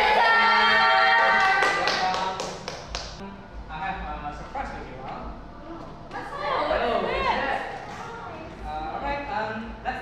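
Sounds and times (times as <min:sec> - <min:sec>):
voices cheering: 0:00.0 - 0:02.1
hands clapping: 0:01.2 - 0:03.2.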